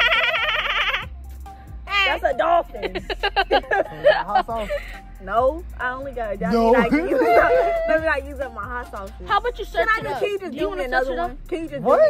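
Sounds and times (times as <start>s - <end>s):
high-pitched warbling laugh: 0.0s - 1.1s, 6.8s - 8.0s.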